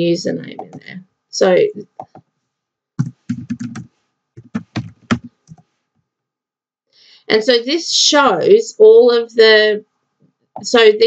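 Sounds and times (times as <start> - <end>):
typing on computer keyboard: 0.6 - 0.8, 2.0 - 2.2, 3.0 - 5.6.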